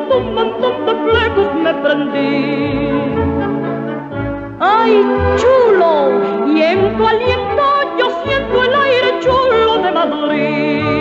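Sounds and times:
woman singing with vibrato: 0.0s - 3.6s, 4.6s - 11.0s
orchestral accompaniment: 0.0s - 11.0s.

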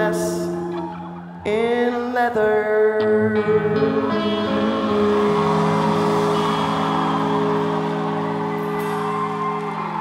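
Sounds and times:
rock band holding sustained chord: 3.5s - 10.0s.

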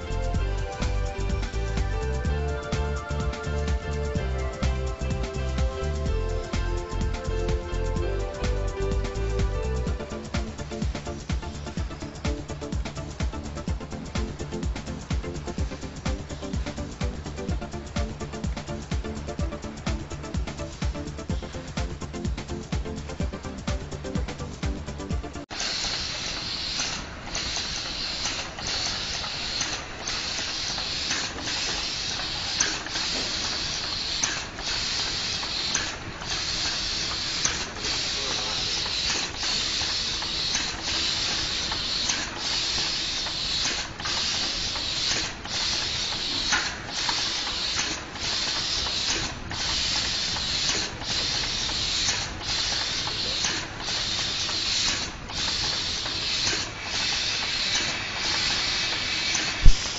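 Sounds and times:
compressed air hissing: 0.0s - 59.9s.

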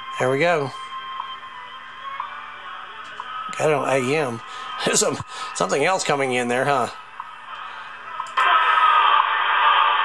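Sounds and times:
radio static hiss: 2.6s - 10.0s.

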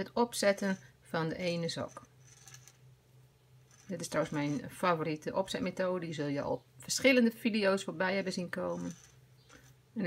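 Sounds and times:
yarn scratching on metal needle: 0.0s - 2.9s, 3.5s - 5.8s, 7.8s - 10.0s
steady low hum: 0.0s - 10.0s.

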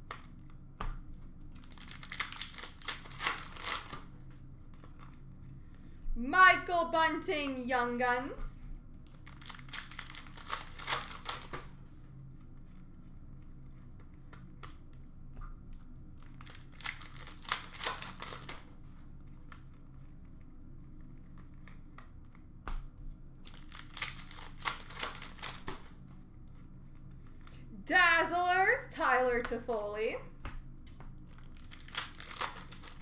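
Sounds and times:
plastic wrappers tearing and crinkling: 1.4s - 5.3s, 9.0s - 11.8s, 16.2s - 20.1s, 23.4s - 27.6s, 30.9s - 33.0s
faint clicks of cards handled: 13.4s - 16.4s, 17.9s - 23.2s, 30.4s - 31.6s.

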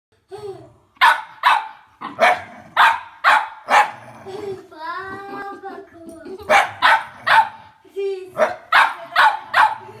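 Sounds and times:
dog barking: 1.0s - 4.0s, 6.5s - 7.7s, 8.4s - 10.0s.

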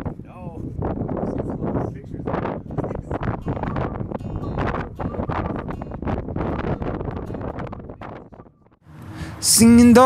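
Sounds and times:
wind buffeting microphone: 0.0s - 8.8s.

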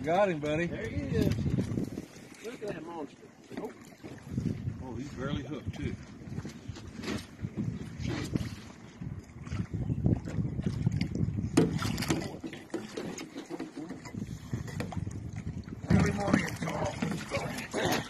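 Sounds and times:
water splashing against boat: 0.0s - 18.0s
fish thrashing in water: 9.4s - 18.0s.

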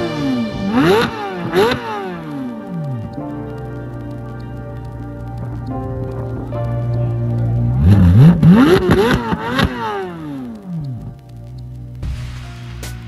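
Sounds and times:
car engine idling and revving: 0.4s - 12.4s.

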